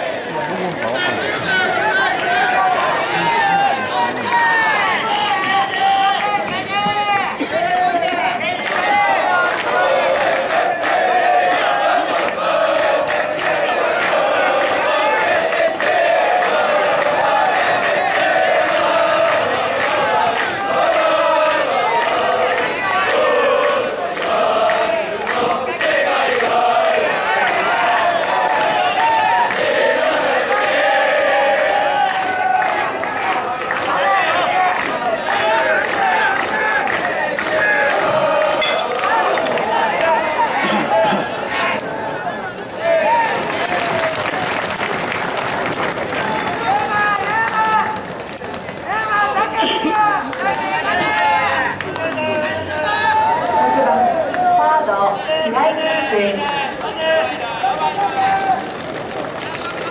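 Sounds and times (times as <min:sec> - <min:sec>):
crowd chanting and shouting: 0:00.0 - 0:59.9.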